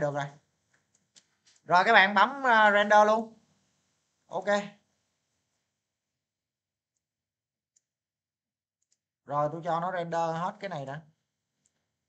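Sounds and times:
computer mouse clicks: 0.7s - 1.6s.

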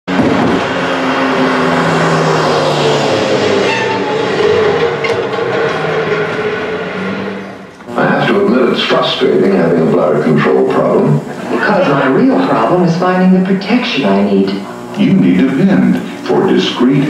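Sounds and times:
loud rumbling vehicle: 0.0s - 13.4s
long horn tones: 0.1s - 12.9s.

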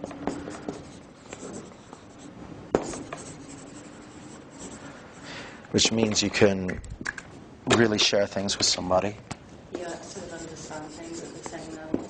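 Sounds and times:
marker pen writing on paper: 0.2s - 4.9s, 9.8s - 12.0s.

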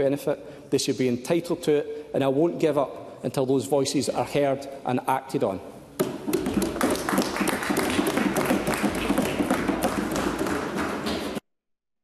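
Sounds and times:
crowd applauding: 6.5s - 11.4s.

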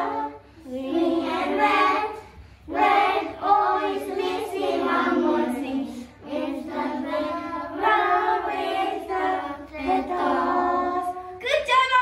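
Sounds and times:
children singing together: 0.0s - 11.4s.

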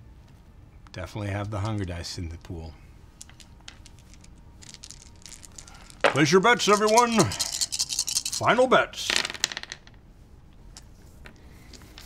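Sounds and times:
dice clattering on tabletop: 3.2s - 10.0s.

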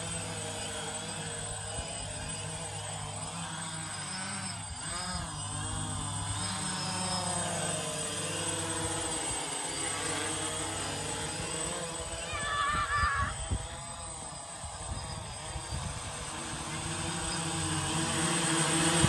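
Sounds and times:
drone motors humming: 0.0s - 19.0s.

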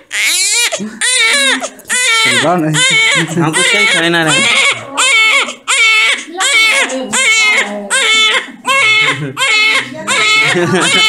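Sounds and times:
newborn baby crying: 0.0s - 11.0s.

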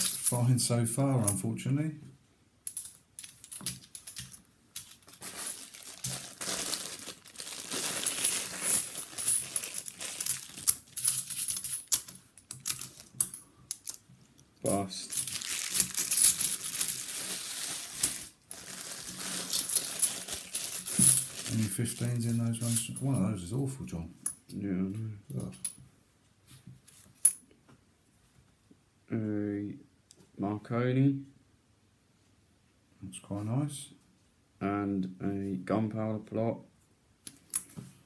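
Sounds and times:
coins clinking: 0.0s - 0.4s, 2.7s - 14.0s, 15.0s - 23.2s
plastic bag crinkling: 4.8s - 11.4s, 15.0s - 22.6s.

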